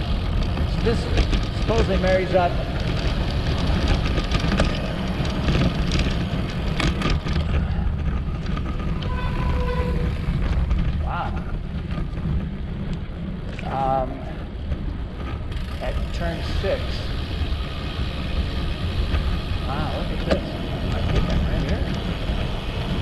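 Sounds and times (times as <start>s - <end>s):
bike tyre noise: 0.0s - 23.0s
wind rushing over microphone: 0.0s - 23.0s.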